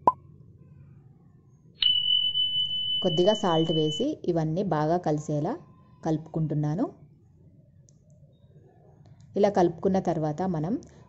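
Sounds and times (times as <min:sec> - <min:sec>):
notification bell chime: 0:01.8 - 0:04.0.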